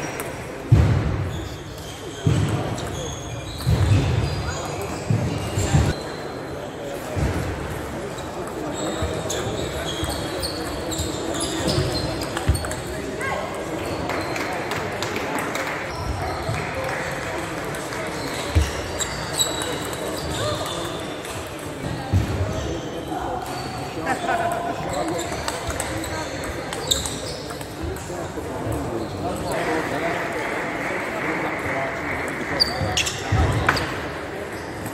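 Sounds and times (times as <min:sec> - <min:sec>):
background chatter: 0:00.0 - 0:34.9.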